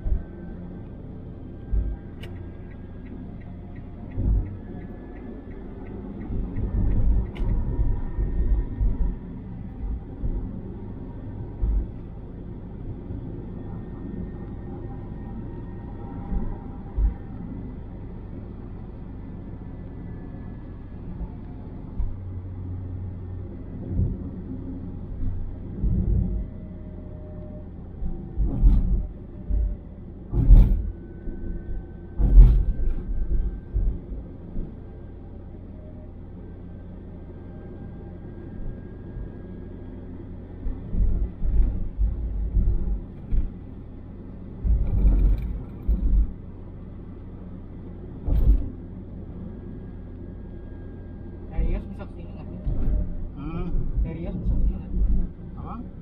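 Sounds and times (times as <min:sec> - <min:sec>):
engine and tyre rumble: 0:00.0 - 0:56.0.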